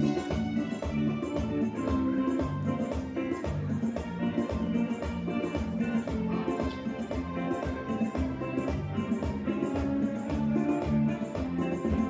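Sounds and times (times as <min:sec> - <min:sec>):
guitars: 0:00.0 - 0:12.0
keyboard: 0:00.0 - 0:12.0
percussion beat: 0:00.0 - 0:12.0.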